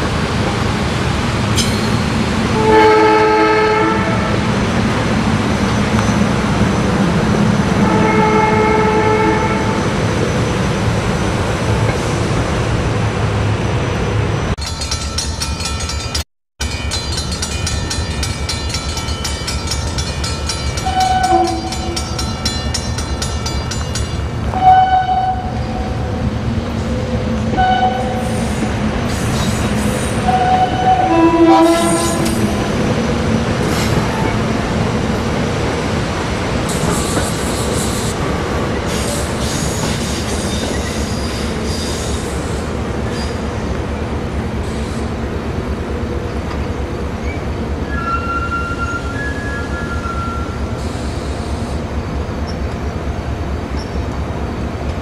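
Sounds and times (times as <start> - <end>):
train rumbling: 0.0 - 55.0
train horn blasts: 2.5 - 4.4, 7.8 - 9.8, 20.8 - 22.0, 24.5 - 26.0, 27.5 - 28.4, 30.2 - 32.4.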